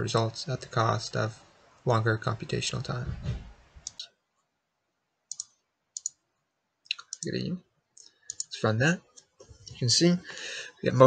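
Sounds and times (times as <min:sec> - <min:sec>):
computer mouse clicking: 0:05.3 - 0:06.2, 0:06.9 - 0:07.3, 0:08.0 - 0:08.5.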